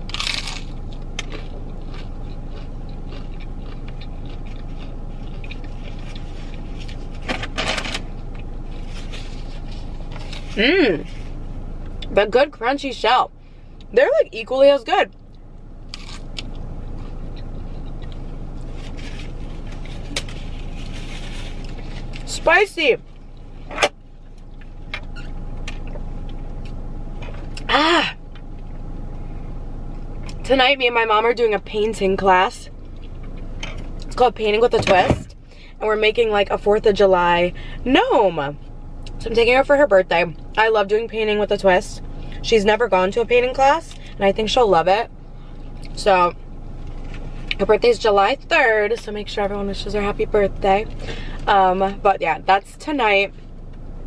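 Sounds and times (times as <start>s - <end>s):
crunchy taco shell bite: 0.0s - 7.0s, 15.9s - 18.2s
low car interior hum: 0.0s - 54.0s
chewing: 0.1s - 7.3s, 15.1s - 22.2s.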